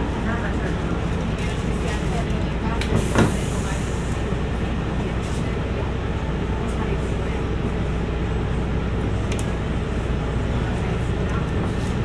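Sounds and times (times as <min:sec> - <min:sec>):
bus engine rumble: 0:00.0 - 0:12.0
passengers talking faintly: 0:00.0 - 0:12.0.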